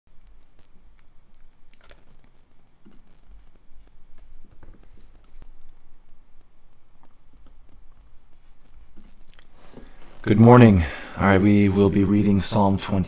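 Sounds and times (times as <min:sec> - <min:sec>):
steady low hum: 0:00.1 - 0:13.0.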